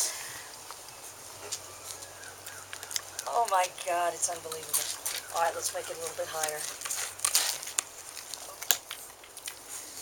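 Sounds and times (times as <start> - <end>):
pig chewing with wet clicks: 0.8 - 9.8.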